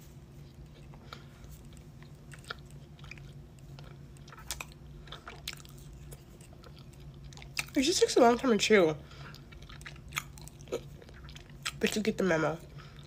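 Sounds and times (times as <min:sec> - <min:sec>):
steady low hum: 0:00.0 - 0:13.0
person chewing: 0:00.4 - 0:07.8, 0:09.1 - 0:11.9.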